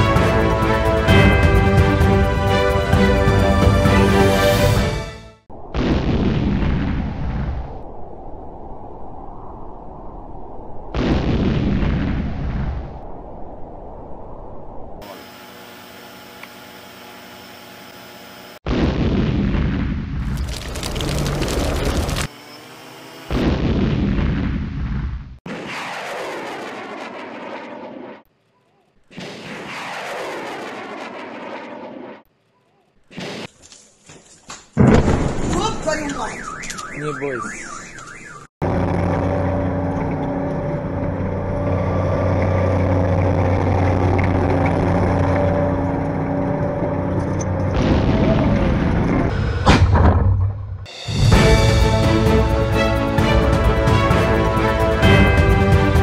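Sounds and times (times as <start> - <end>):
rumbling explosions with crackle: 5.5 - 15.0, 18.6 - 22.3, 23.3 - 28.3, 29.0 - 32.3, 34.8 - 36.2, 46.8 - 51.8
turbine engine rumble and whine: 20.4 - 23.4, 38.0 - 49.7.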